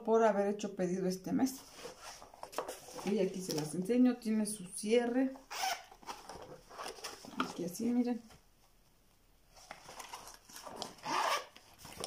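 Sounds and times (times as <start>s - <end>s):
cloth and zipper rustling: 1.4s - 8.8s, 9.5s - 12.0s.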